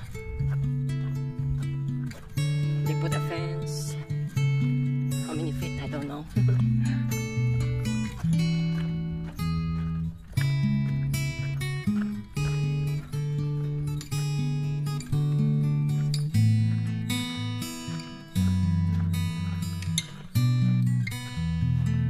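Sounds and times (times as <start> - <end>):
acoustic guitar strumming chords: 0.0 - 22.0.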